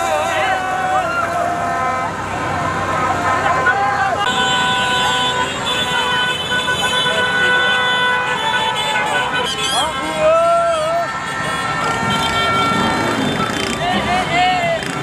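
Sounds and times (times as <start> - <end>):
crowd shouting and chanting: 0.0 - 5.6, 8.3 - 15.0
car horns sounding together: 4.2 - 13.8.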